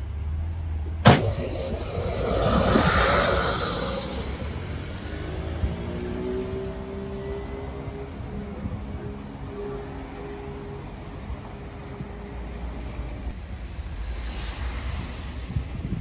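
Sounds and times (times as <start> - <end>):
cars passing: 0.0 - 16.0
large vehicle passing: 1.1 - 9.0.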